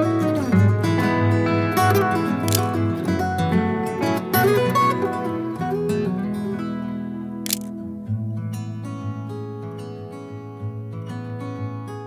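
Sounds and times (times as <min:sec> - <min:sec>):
acoustic guitar chord: 0:00.0 - 0:12.0
camera shutter click: 0:02.5 - 0:02.8, 0:07.5 - 0:07.8.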